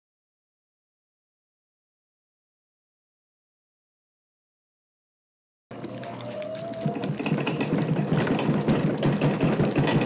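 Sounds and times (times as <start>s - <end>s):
potter's wheel whirring: 5.7s - 10.0s.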